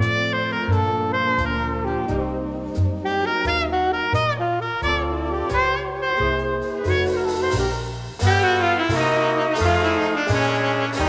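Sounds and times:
saxophones and brass: 0.0 - 11.0
steady bass notes: 0.0 - 11.0.

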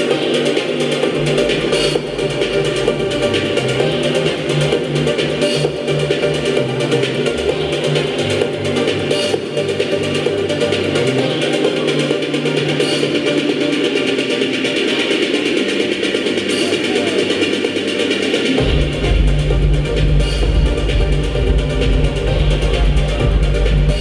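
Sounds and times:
electronic dance music: 0.0 - 24.0
heavy bass beat: 0.0 - 24.0.

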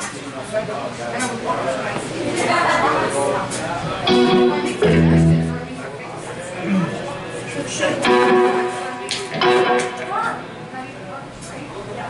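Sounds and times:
guitar chord strummed: 4.0 - 6.0, 8.0 - 11.0.

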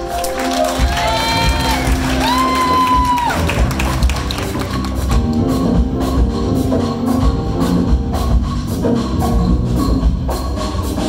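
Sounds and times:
jazz ensemble groove: 0.0 - 11.0.

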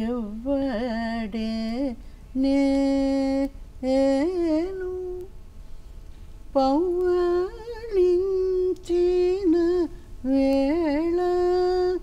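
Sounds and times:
woman singing wordless melody: 0.0 - 5.4, 6.5 - 12.0.

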